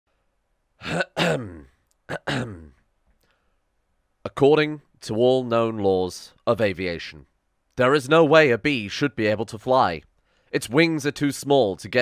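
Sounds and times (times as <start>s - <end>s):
man clearing his throat: 0.8s - 2.8s.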